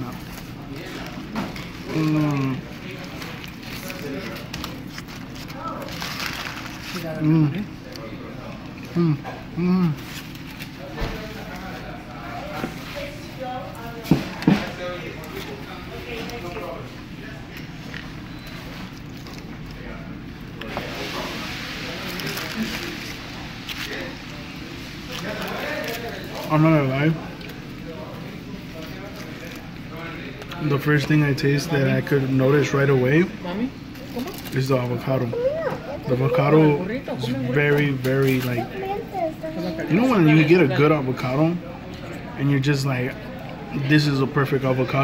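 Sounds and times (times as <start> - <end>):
faint voices: 0.0 - 45.0.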